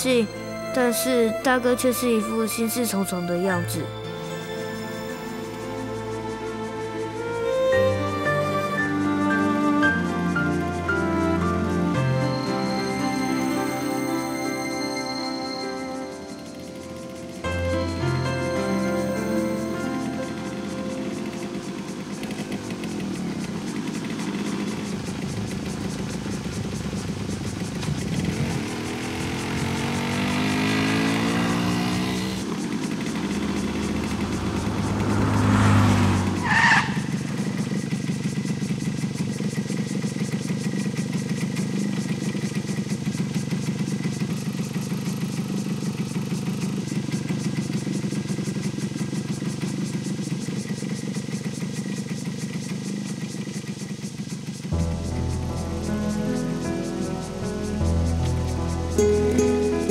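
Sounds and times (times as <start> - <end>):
motorcycle engine running: 0.0 - 59.9.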